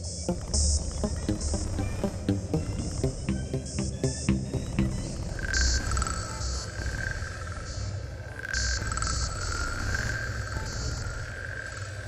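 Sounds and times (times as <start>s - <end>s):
steady low rumble: 0.3s - 5.6s.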